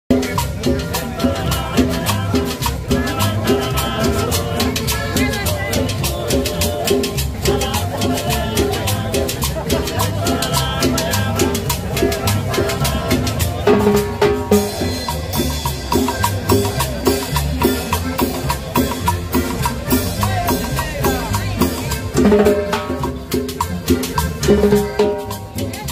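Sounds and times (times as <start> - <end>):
live band playing dance music: 0.1 - 25.9.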